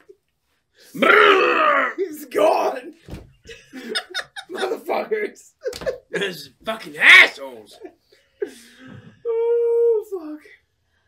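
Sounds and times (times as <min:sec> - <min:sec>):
person laughing loudly: 0:03.5 - 0:05.0.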